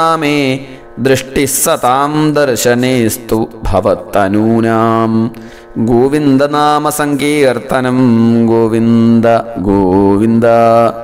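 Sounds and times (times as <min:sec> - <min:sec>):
man chanting a prayer: 0:00.0 - 0:11.0
breath: 0:05.3 - 0:05.8.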